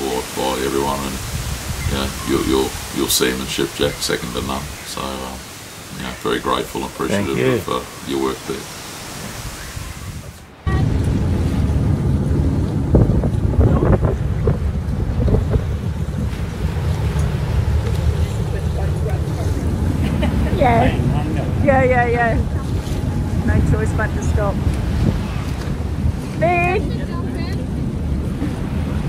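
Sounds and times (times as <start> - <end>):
sea wash: 0.0 - 29.0
wind rumbling on microphone: 0.0 - 29.0
person calling out: 7.1 - 7.7
motor boat engine drone: 10.5 - 29.0.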